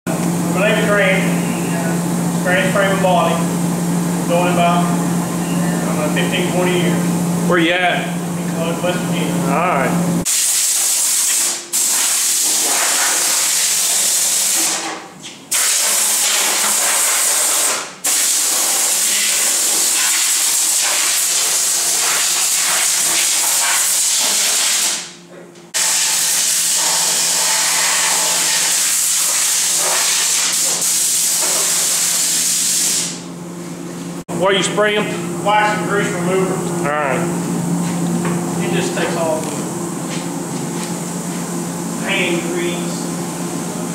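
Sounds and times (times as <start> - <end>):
compressed air gun hissing: 10.3 - 14.8.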